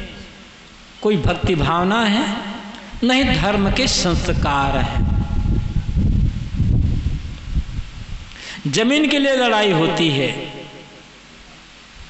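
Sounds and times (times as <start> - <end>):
wind buffeting microphone: 2.9 - 8.4.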